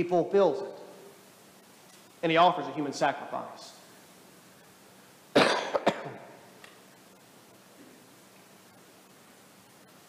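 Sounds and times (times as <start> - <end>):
man clearing his throat: 5.4 - 6.3.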